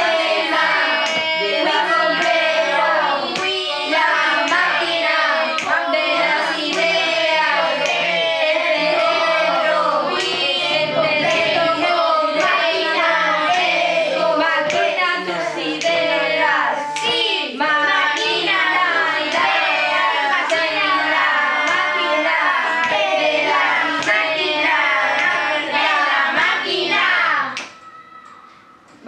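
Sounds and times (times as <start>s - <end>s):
children singing in parts: 0.0s - 29.0s.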